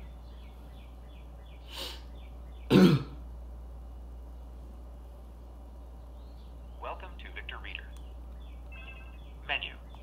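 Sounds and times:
steady low hum: 0:00.0 - 0:10.0
man clearing throat: 0:02.7 - 0:03.2.

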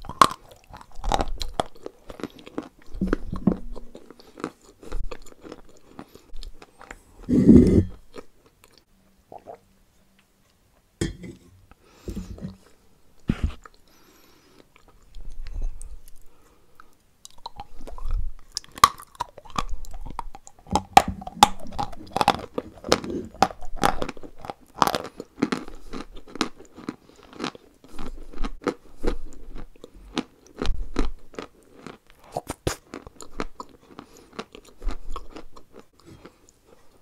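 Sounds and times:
chewing clay paste crunches: 0:00.0 - 0:09.6, 0:14.6 - 0:37.0.

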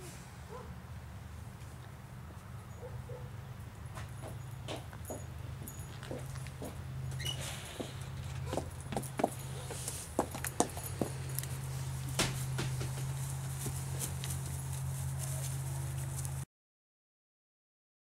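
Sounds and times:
steady low hum: 0:00.0 - 0:16.4
running footsteps: 0:03.9 - 0:16.4.

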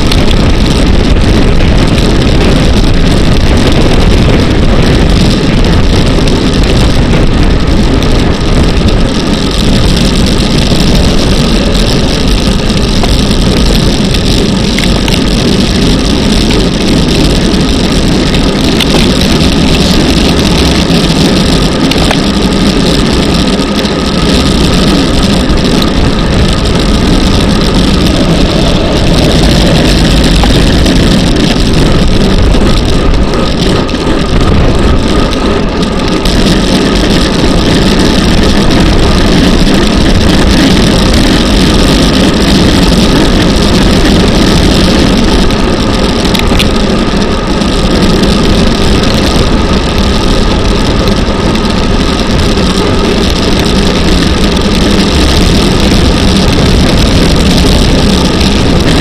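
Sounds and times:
bicycle tyre and road noise: 0:00.0 - 0:59.0
wind buffeting microphone: 0:00.0 - 0:59.0.

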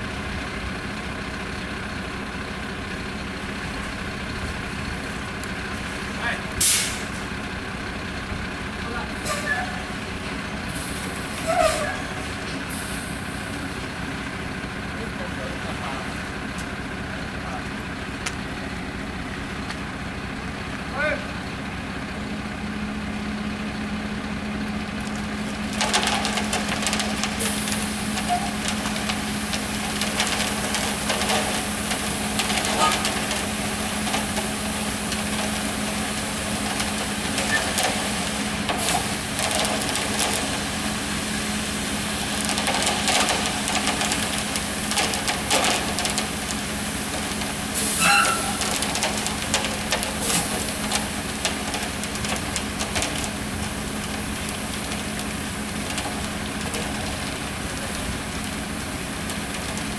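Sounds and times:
concrete mixer truck humming: 0:00.0 - 0:59.9.

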